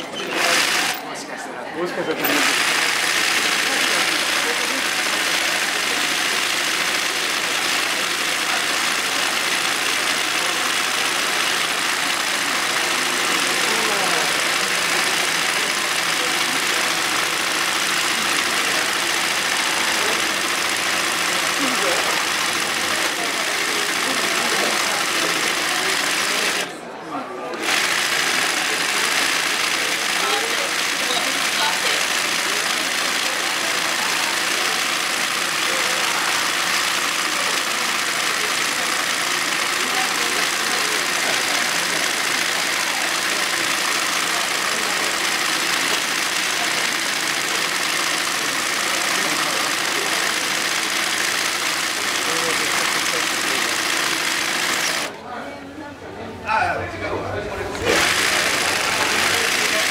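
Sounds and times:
embroidery sewing machine running: 0:00.0 - 0:01.2, 0:01.8 - 0:26.8, 0:27.4 - 0:55.2, 0:57.6 - 0:59.9.

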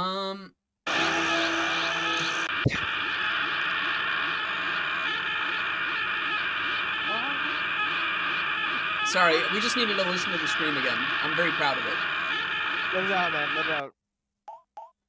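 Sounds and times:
distorted cartoon scream: 0:00.9 - 0:13.8.

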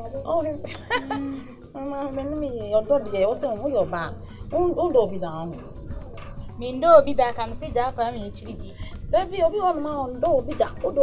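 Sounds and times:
woman talking: 0:00.0 - 0:05.7, 0:06.6 - 0:11.0
background music: 0:00.0 - 0:11.0.

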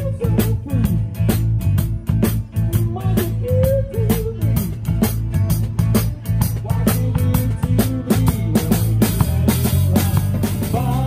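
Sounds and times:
bass guitar: 0:00.0 - 0:11.0
guitar lead with bending notes: 0:00.0 - 0:11.0
live band playing: 0:00.0 - 0:11.0.

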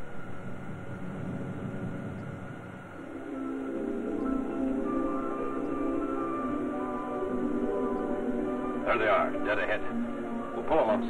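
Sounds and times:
spaceship engine rumble: 0:00.0 - 0:07.7.

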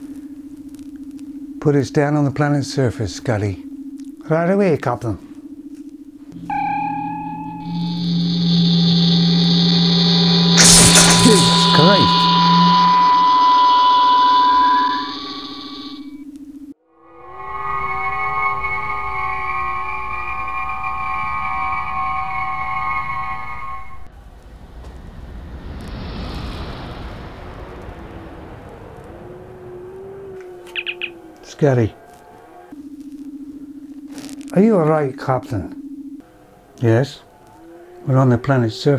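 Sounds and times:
shimmering transporter beam chord: 0:06.4 - 0:16.2.

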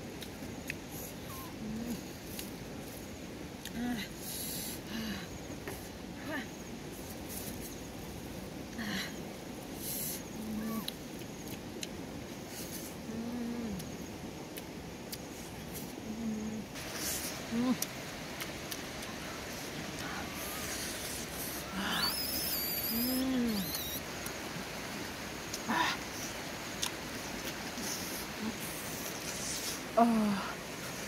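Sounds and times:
person humming mm: 0:01.3 - 0:02.5, 0:03.6 - 0:05.2, 0:09.9 - 0:10.9, 0:12.6 - 0:14.0, 0:16.0 - 0:17.9, 0:19.0 - 0:24.0, 0:25.5 - 0:26.1, 0:27.8 - 0:30.6
mouth clicks and smacks eating: 0:10.7 - 0:12.0, 0:13.7 - 0:16.0, 0:16.9 - 0:23.0, 0:26.6 - 0:29.9
high chirp: 0:20.3 - 0:24.0.

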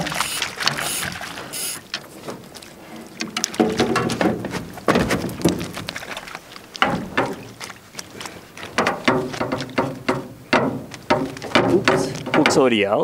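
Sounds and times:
fish splashing: 0:00.0 - 0:13.0
knocks in aluminum boat: 0:03.2 - 0:06.1, 0:06.8 - 0:07.8, 0:08.6 - 0:13.0.

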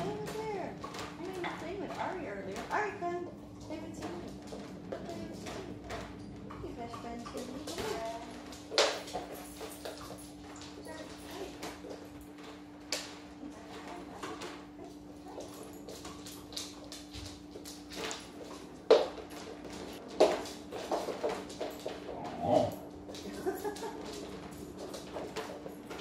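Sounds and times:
dog claws tapping on wooden floor: 0:00.0 - 0:26.0
steady low hum: 0:00.0 - 0:26.0.

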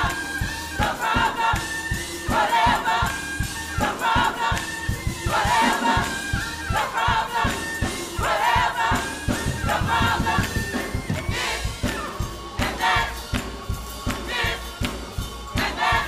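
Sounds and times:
gospel choir singing: 0:00.0 - 0:16.0
keyboard-led band playing: 0:00.0 - 0:16.0.

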